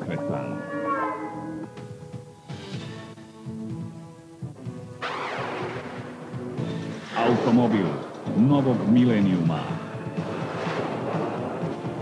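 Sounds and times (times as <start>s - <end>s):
dramatic music: 0.0s - 12.0s.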